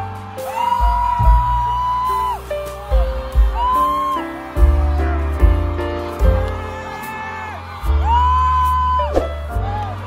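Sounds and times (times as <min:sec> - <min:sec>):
live band music: 0:00.0 - 0:09.8.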